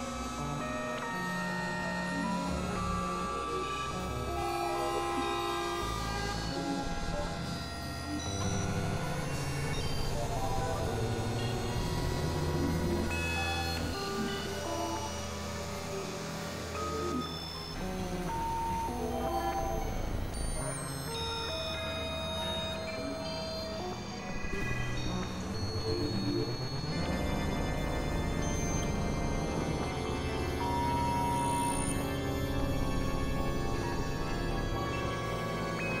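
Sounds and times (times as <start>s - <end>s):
experimental synthesizer music: 0.0s - 36.0s.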